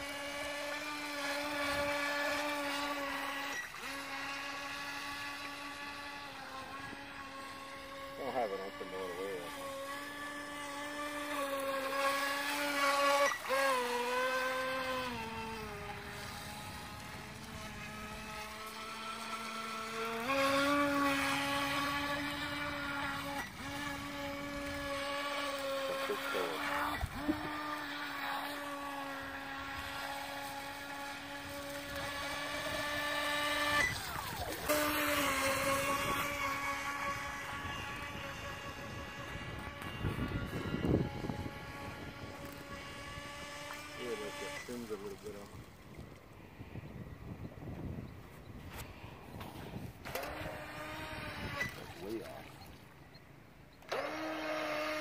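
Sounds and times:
rc boat motor whining: 0.0 - 55.0.

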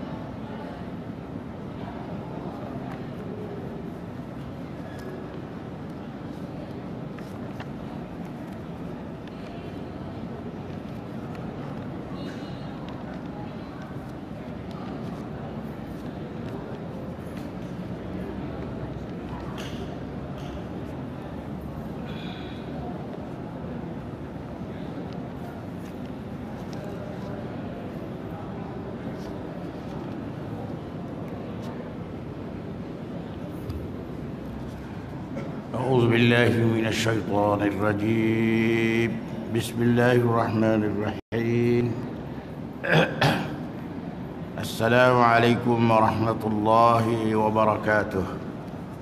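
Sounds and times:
low rumbling background noise: 0.0 - 49.0.

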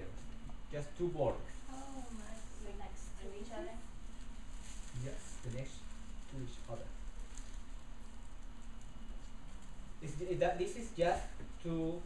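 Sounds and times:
low room hum: 0.0 - 12.0
paper rustling on table: 4.1 - 9.8.

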